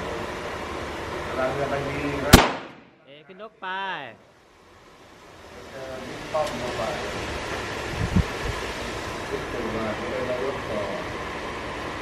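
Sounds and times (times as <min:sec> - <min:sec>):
wind-like hiss: 0:05.0 - 0:12.0.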